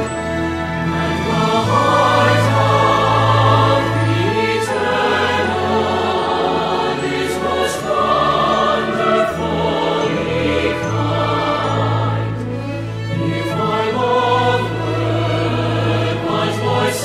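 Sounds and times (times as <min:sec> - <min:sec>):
choir singing a hymn: 0:00.0 - 0:17.0
orchestral accompaniment: 0:00.0 - 0:17.0.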